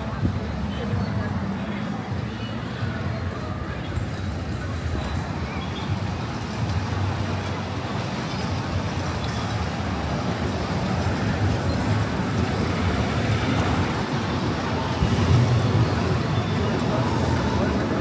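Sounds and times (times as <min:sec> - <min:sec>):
amusement park ambience: 0:00.0 - 0:18.0.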